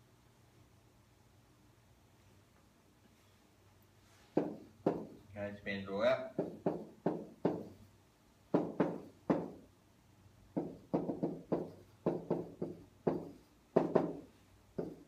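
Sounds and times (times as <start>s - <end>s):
pen knocking on whiteboard: 4.3s - 5.2s, 6.4s - 7.8s, 8.5s - 9.6s, 10.5s - 15.0s.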